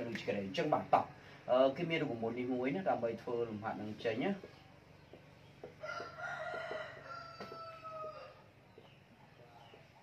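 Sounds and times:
rooster crowing: 0:05.8 - 0:08.5.

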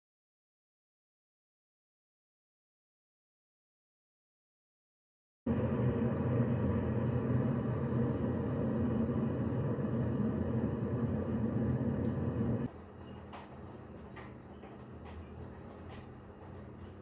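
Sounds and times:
kettle water boiling: 0:05.5 - 0:12.7.

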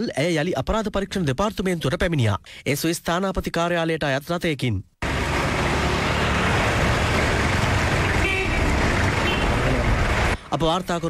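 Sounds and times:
street traffic engines: 0:05.0 - 0:11.0
car horn: 0:07.9 - 0:09.8.

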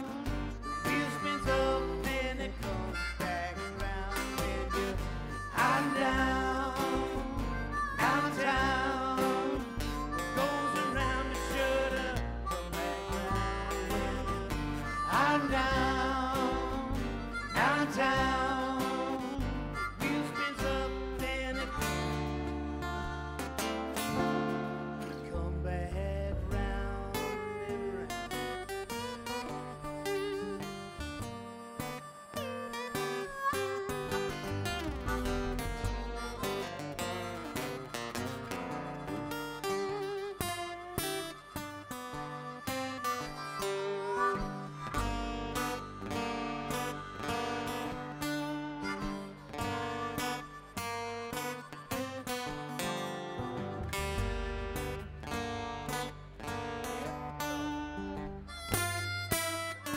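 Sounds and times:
acoustic guitars strumming: 0:00.0 - 0:59.9.

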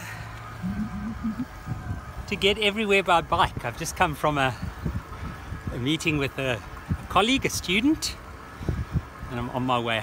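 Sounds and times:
steady low hum: 0:00.0 - 0:02.3.

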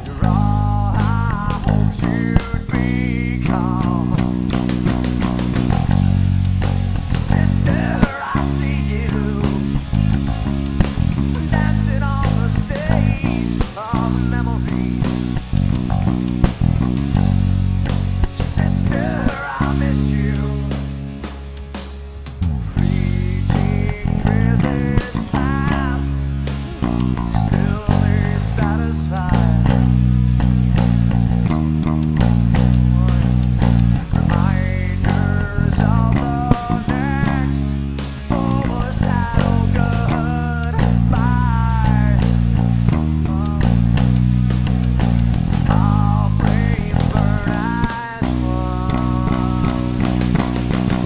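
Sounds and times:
electric bass driving notes: 0:00.0 - 0:51.0
rock band playing: 0:00.0 - 0:51.0
wavering lead guitar line: 0:00.0 - 0:51.0.

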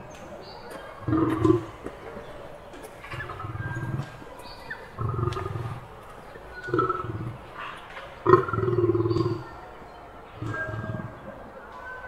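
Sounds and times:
lion roaring: 0:01.0 - 0:01.7, 0:03.1 - 0:04.2, 0:04.9 - 0:05.8, 0:06.6 - 0:07.6, 0:08.2 - 0:09.6, 0:10.4 - 0:11.3.

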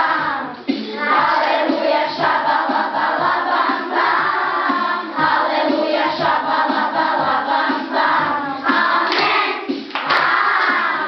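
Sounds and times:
children singing: 0:00.0 - 0:11.0
steady beat: 0:00.0 - 0:11.0.

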